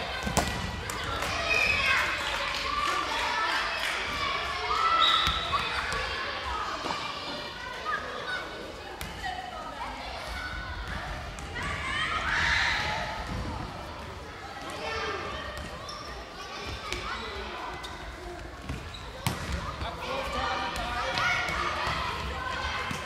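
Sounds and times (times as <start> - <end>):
children shouting in echoing hall: 9.8 - 13.3.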